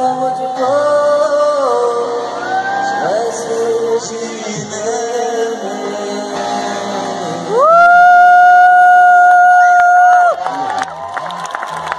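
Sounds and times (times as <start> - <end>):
live band playing: 0.0 - 8.3.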